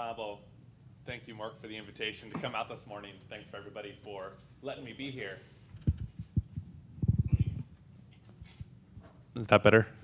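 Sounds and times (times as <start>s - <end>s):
microphone handling thumps and rumbles: 5.7s - 7.7s.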